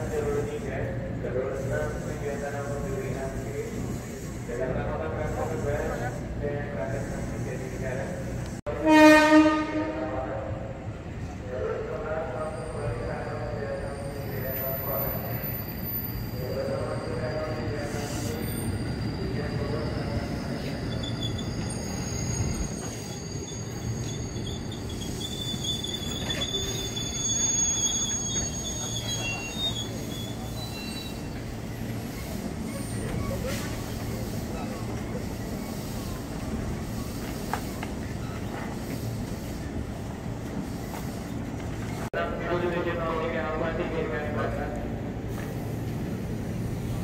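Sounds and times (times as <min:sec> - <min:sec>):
train wheels rumbling on rail: 0:00.0 - 0:47.0
high-pitched wheel squeal: 0:12.4 - 0:34.8.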